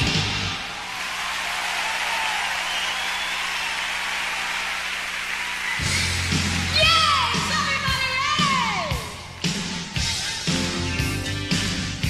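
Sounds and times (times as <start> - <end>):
audience applauding and cheering: 0.0 - 10.7
faint whistles: 2.6 - 3.7.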